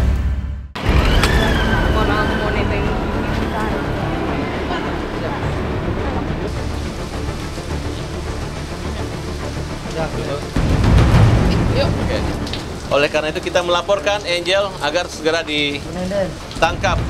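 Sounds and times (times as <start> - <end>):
traffic noise: 0.8 - 16.8
people talking: 1.8 - 6.8, 9.9 - 10.6, 11.5 - 17.0.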